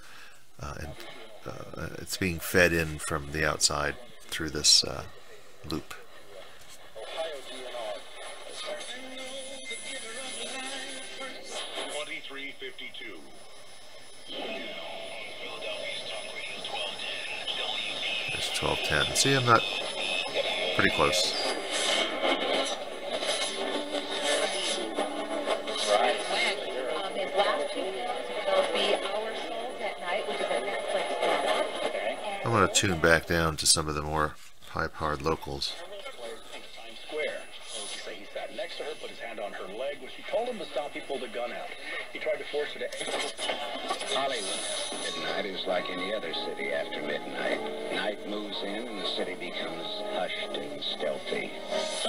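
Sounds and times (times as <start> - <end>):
radio tuning between stations: 0.0 - 52.0
interference whistles: 2.2 - 33.3, 35.4 - 39.3, 40.1 - 52.0
talk on radio: 15.8 - 22.1.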